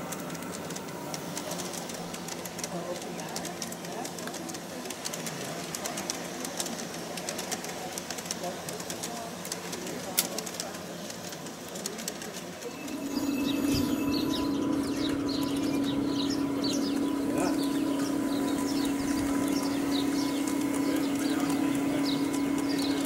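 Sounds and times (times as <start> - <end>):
model train wheels clicking: 0.0 - 23.0
steady hum: 12.6 - 23.0
bird chirps: 12.7 - 23.0.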